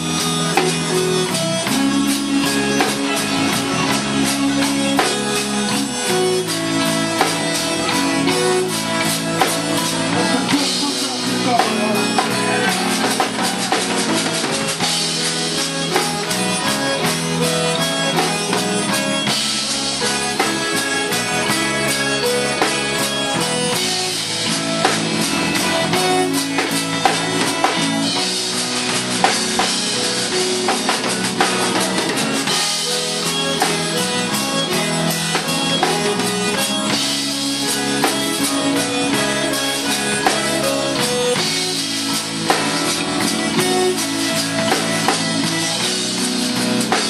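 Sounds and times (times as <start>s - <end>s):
accordion holding chords: 0.0s - 47.0s
drum beats: 0.0s - 47.0s
guitar: 0.0s - 47.0s
live band playing slow song: 0.0s - 47.0s.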